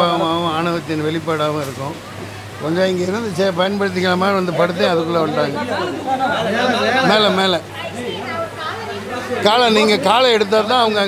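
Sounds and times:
background chatter: 0:00.0 - 0:11.0
man talking: 0:09.3 - 0:11.0.

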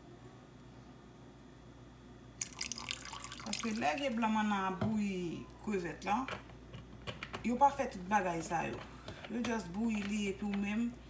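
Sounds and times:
juice trickling into water: 0:02.4 - 0:04.3.

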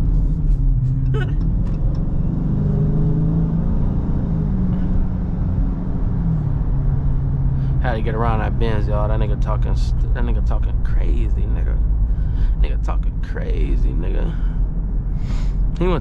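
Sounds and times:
car engine heard from cabin: 0:00.0 - 0:16.0.

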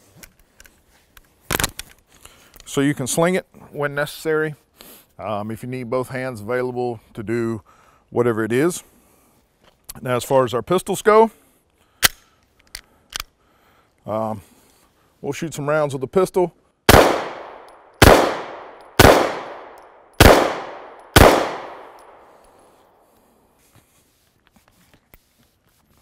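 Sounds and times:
rifle sling hardware clicking: 0:12.0 - 0:13.4, 0:17.3 - 0:22.7.

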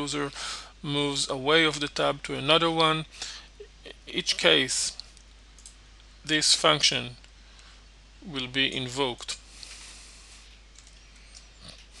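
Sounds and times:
faint microphone hiss and hum: 0:00.0 - 0:12.0
tiny clicks: 0:05.0 - 0:06.1, 0:10.7 - 0:11.5.

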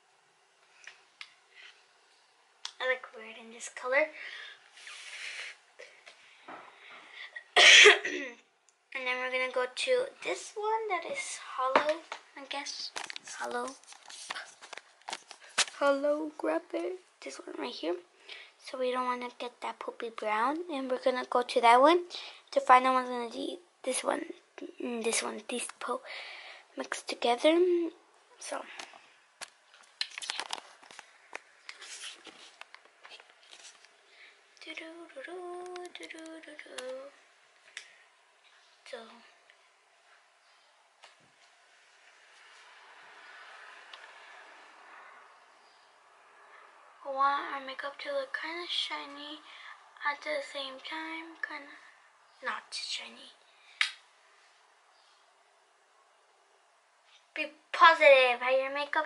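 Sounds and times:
girl coughing: 0:07.4 - 0:08.4
soft rustling: 0:11.2 - 0:16.1, 0:28.4 - 0:43.9.

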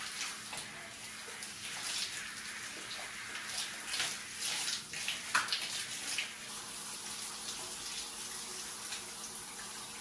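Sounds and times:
shower spraying water on tiles: 0:00.0 - 0:10.0.

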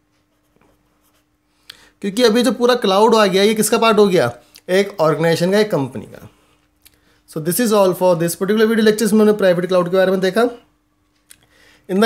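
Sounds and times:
marker pen scratching on paper: 0:00.2 - 0:01.3.

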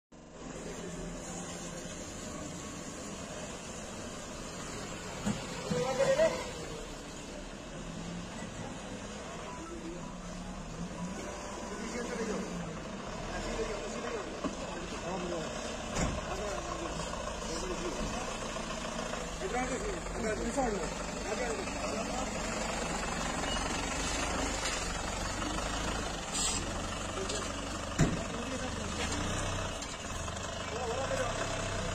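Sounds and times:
vehicles driving past: 0:00.2 - 0:31.9.

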